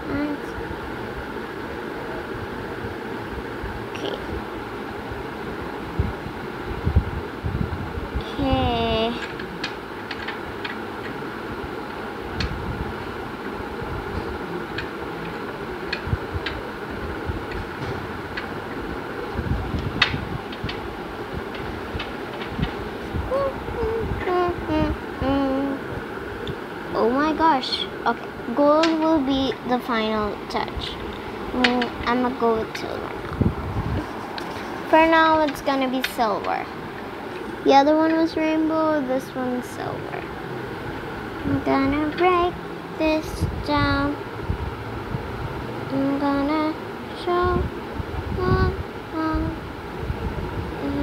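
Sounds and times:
room hum: 0:00.0 - 0:51.0
person humming: 0:23.3 - 0:25.9, 0:48.4 - 0:49.7.

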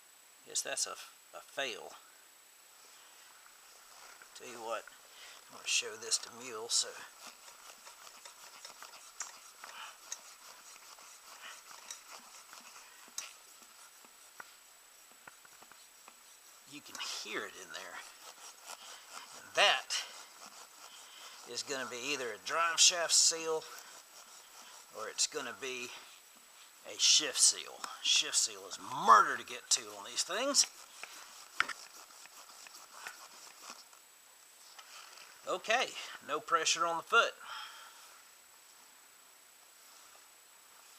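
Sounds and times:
faint ticks and knocks: 0:07.2 - 0:17.0.

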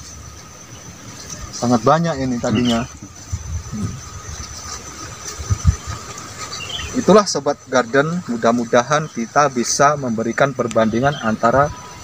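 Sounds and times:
field insects droning: 0:00.0 - 0:12.0
wind buffeting microphone: 0:02.2 - 0:07.2.

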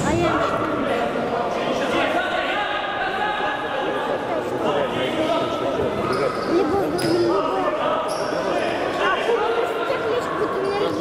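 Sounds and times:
voices and shouts: 0:00.0 - 0:11.0.

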